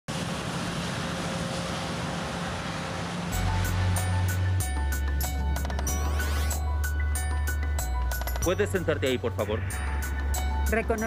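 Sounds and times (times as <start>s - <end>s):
rushing jet engine: 0.1s - 6.6s
music with deep bass and hits: 3.3s - 11.0s.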